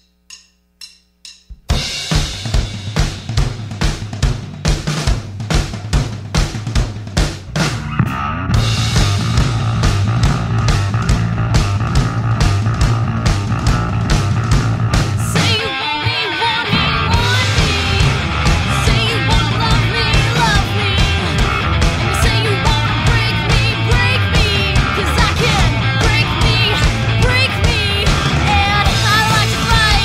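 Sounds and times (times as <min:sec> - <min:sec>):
distorted instruments: 0:00.0 - 0:30.0
fast drum-kit beat: 0:00.0 - 0:30.0
bass guitar: 0:01.6 - 0:30.0
rock band playing: 0:01.6 - 0:30.0.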